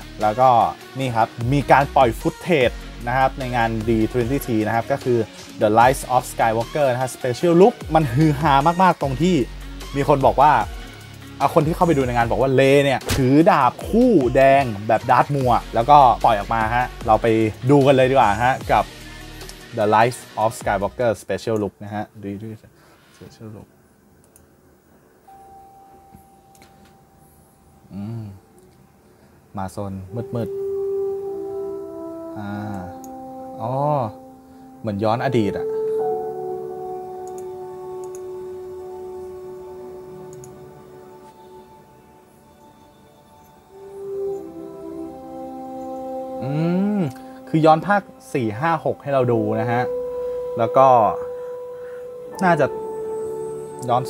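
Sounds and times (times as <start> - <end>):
man speaking: 0.0 - 10.7, 11.4 - 18.9, 19.7 - 23.7, 29.6 - 30.6, 33.6 - 34.2, 34.8 - 35.8, 46.4 - 51.3, 52.3 - 52.8, 53.8 - 54.0
low room noise: 19.7 - 54.0
faint steady tone: 21.8 - 54.0.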